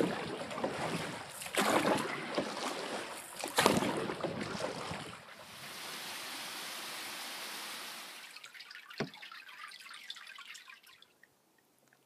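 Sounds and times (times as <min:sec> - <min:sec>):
hiss of moving water: 0:05.4 - 0:08.4
water dripping and trickling: 0:08.0 - 0:12.0.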